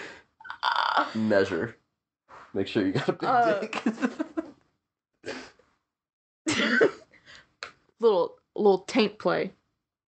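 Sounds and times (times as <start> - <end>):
person laughing: 3.0 - 4.5, 6.5 - 7.0.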